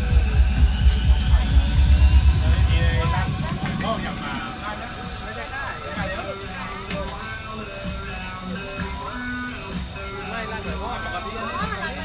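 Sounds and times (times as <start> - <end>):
crowd talking: 0.0 - 12.0
thin rising whine: 0.0 - 12.0.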